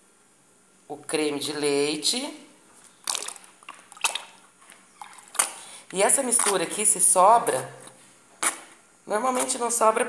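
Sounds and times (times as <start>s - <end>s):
cream glugging and splashing: 2.8s - 6.8s
sharp splashes: 3.0s - 4.4s.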